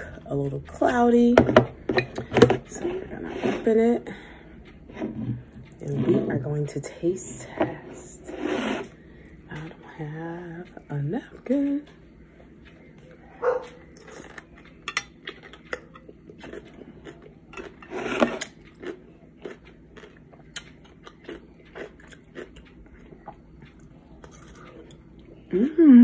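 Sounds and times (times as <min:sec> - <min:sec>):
crunching and chewing pickle: 0:13.3 - 0:25.5.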